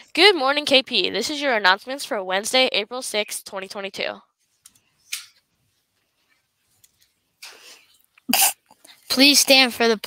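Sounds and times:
person breathing softly: 7.4s - 8.0s
sharp cough-like throat burst: 8.3s - 8.7s.

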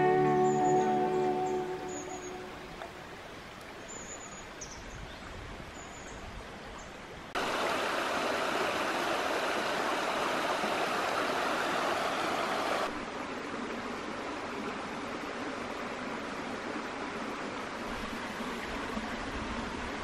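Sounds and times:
river water rushing over stones: 7.4s - 20.0s.

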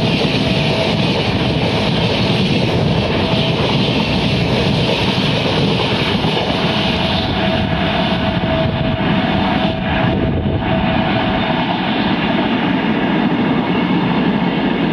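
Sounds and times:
train wheels rumbling on rails: 0.0s - 14.9s.

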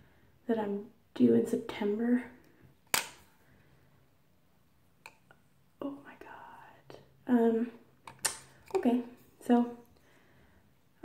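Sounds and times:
woman whispering: 5.8s - 7.8s.

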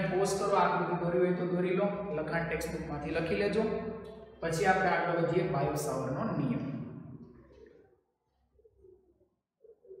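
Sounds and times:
faint bird cooing: 8.6s - 10.0s.

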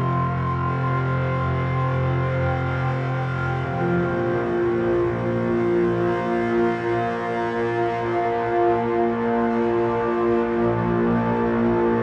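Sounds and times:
background music with layered tones: 0.0s - 12.0s.

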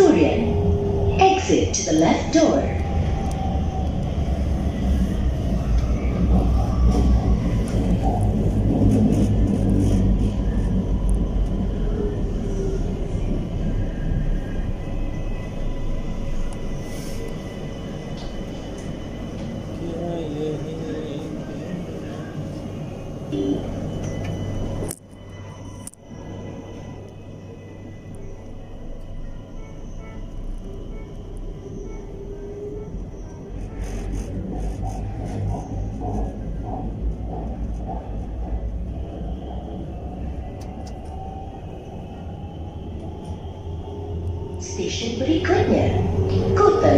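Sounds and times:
train rumbling on track: 0.0s - 46.9s.

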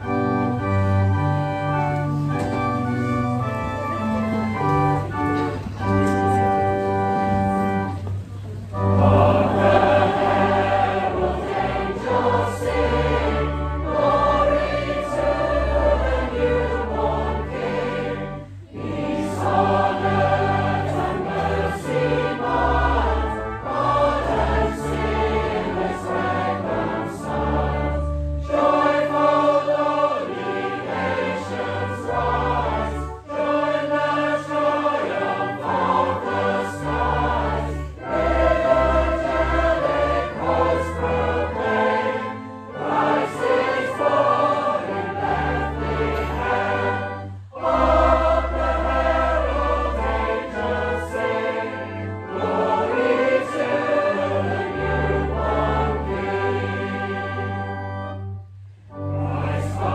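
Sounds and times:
congregation singing a carol: 0.0s - 59.9s
organ bass notes: 0.0s - 59.9s.

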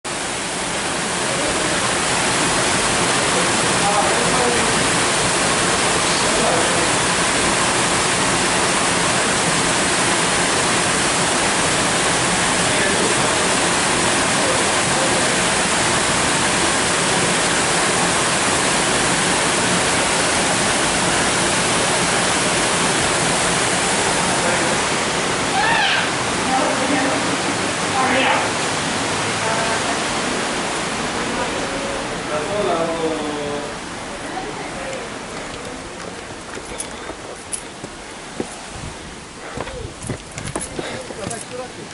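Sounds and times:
waterfall rushing over rocks: 0.1s - 41.9s
short loud calls: 25.4s - 26.2s.

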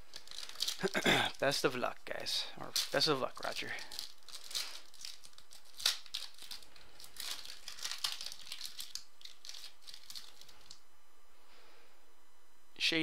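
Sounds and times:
cards being handled: 0.0s - 1.0s, 2.1s - 10.8s
foil wrapper crinkling: 0.0s - 10.8s.

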